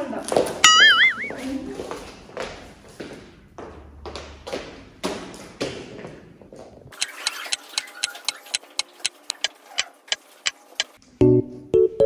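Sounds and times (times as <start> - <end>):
clock ticking: 7.0 - 10.2.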